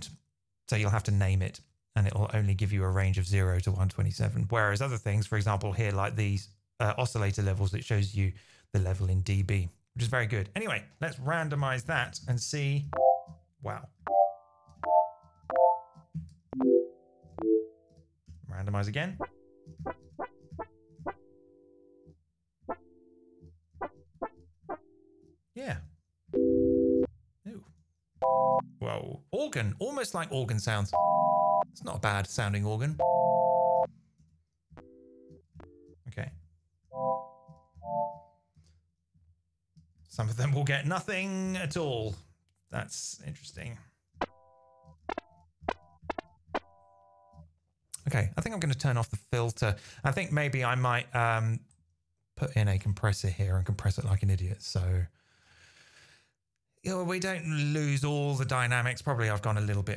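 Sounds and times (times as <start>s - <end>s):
plucky synthesizer notes: 12.9s - 13.4s, 14.0s - 18.0s, 28.2s - 28.9s, 30.9s - 31.8s, 33.0s - 34.0s, 36.9s - 38.3s
held organ-like synth tones: 28.2s - 28.9s, 31.0s - 31.8s, 33.0s - 33.9s.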